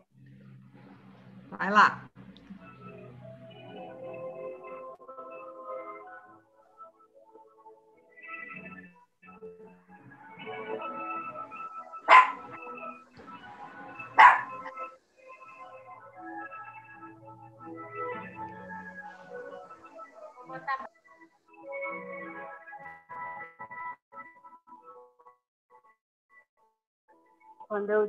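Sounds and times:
thin instrumental backing track: 0:00.0 - 0:23.8.

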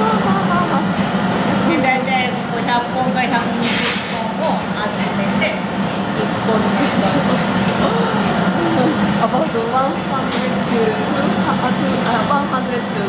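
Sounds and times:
voices talking: 0:00.0 - 0:01.0, 0:01.6 - 0:13.0
machinery humming: 0:00.0 - 0:13.0.

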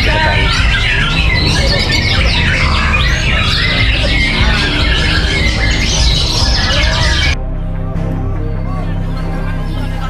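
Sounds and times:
birds singing in chorus: 0:00.0 - 0:07.4
music with low beat: 0:00.0 - 0:10.0.

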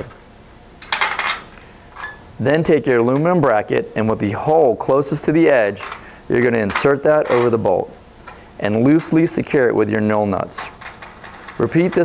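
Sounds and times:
metallic rattle: 0:00.8 - 0:02.2, 0:10.6 - 0:12.0.

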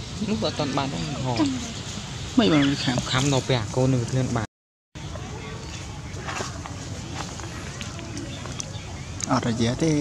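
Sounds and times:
faint voices: 0:05.0 - 0:10.0.

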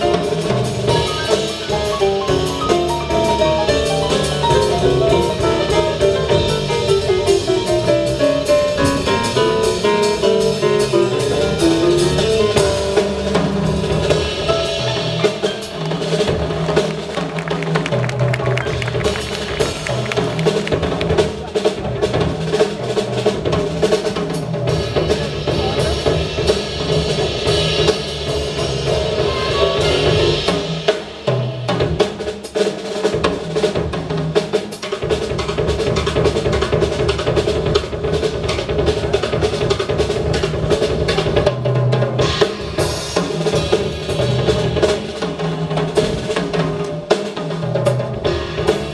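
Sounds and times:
drums and cymbals: 0:00.0 - 0:48.9
live jazz band: 0:00.0 - 0:48.9.

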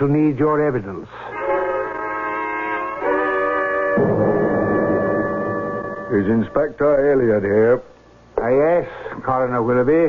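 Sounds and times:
held steady tone: 0:04.0 - 0:06.8.

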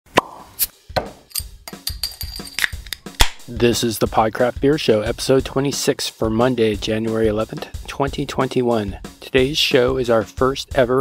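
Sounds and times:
sharp pops: 0:02.7 - 0:03.5.

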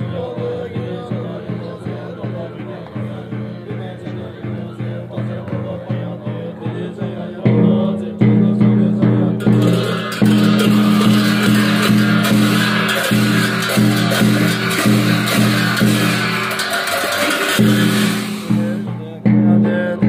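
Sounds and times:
monks chanting on low tones: 0:00.0 - 0:20.0
hand cymbals clashing and ringing: 0:09.4 - 0:19.1.

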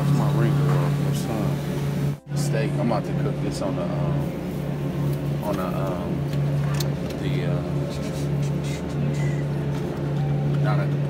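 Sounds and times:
refrigerated case hum: 0:00.0 - 0:11.0.

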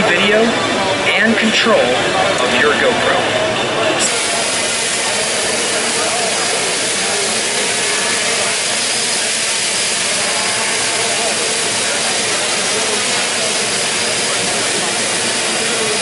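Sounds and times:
quadcopter drone hiss: 0:04.0 - 0:16.0.

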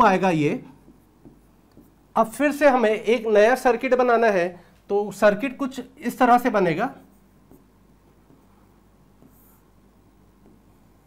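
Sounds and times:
pen writing on whiteboard: 0:00.0 - 0:03.0, 0:06.2 - 0:11.0.

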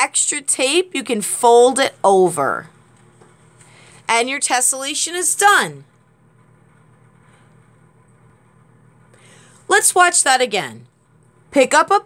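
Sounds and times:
low room hum with hiss: 0:00.0 - 0:12.0.

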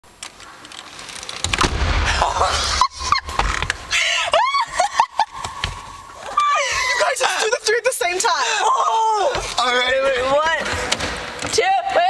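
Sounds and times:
car door slamming: 0:01.4 - 0:04.0.

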